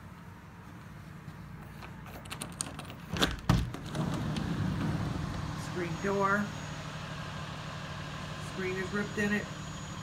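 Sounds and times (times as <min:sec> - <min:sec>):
road traffic: 0:00.0 - 0:10.0
door clunks: 0:03.1 - 0:05.0.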